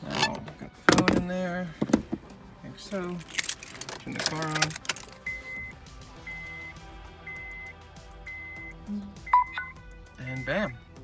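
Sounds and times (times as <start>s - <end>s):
car warning chime beeping: 5.2s - 10.9s.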